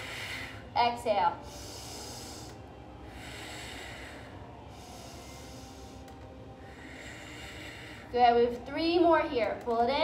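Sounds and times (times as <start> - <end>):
woman breathing softly: 0.0 - 0.7, 1.4 - 8.2.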